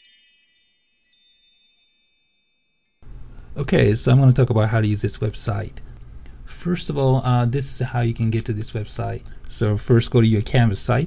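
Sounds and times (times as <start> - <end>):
high ringing chime tones: 0.0 - 3.2
small tinkles: 0.0 - 3.6.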